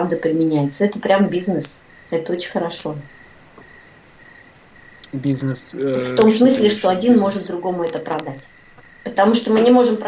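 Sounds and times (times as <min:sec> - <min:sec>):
faint background hiss: 0:00.0 - 0:10.0
steady high-pitched tone: 0:05.0 - 0:10.0.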